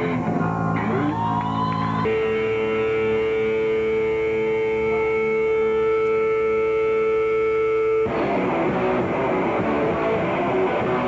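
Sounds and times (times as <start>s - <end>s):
held distorted guitar chord: 0.0s - 1.2s, 2.0s - 11.0s
noise-rock band playing live: 0.0s - 11.0s.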